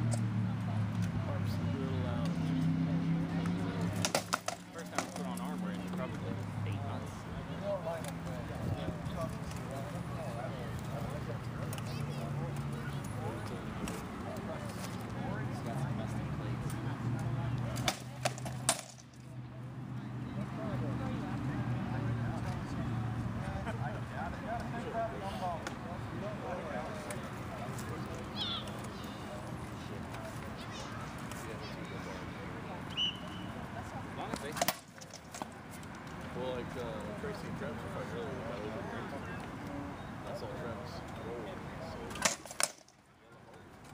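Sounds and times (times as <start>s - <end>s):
voices talking: 0.0s - 43.9s
rattan swords striking shields: 17.8s - 19.0s.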